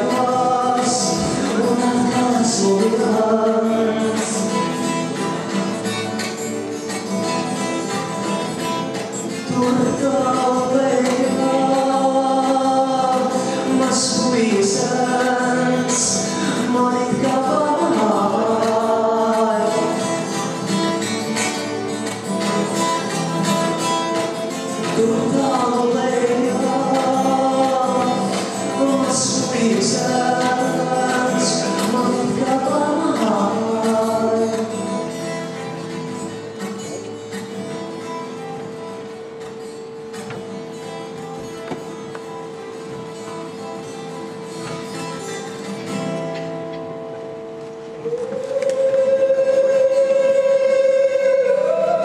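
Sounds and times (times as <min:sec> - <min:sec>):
man singing: 0:00.0 - 0:05.2, 0:09.4 - 0:20.4, 0:24.6 - 0:35.1, 0:48.1 - 0:52.0
acoustic guitar: 0:00.0 - 0:52.0.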